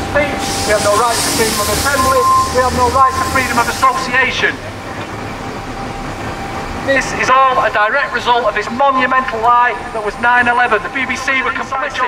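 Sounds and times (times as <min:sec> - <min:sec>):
city road traffic: 0:00.0 - 0:12.0.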